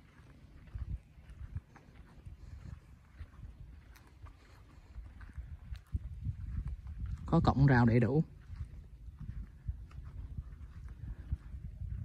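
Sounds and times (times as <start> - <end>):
footsteps on dirt: 0.0 - 12.0
low rumble: 0.0 - 12.0.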